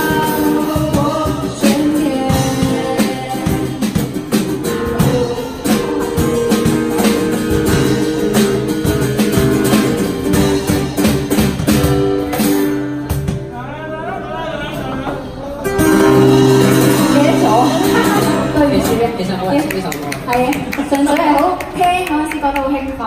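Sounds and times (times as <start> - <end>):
person singing: 0.0 - 6.8
cajon and drum-kit beat: 0.0 - 13.6, 15.7 - 23.0
strummed acoustic guitar: 0.0 - 20.3.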